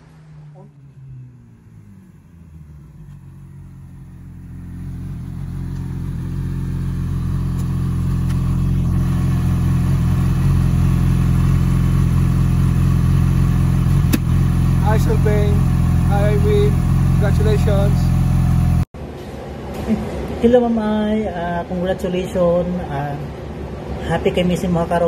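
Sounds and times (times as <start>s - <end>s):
motorcycle engine idling: 1.0s - 18.9s.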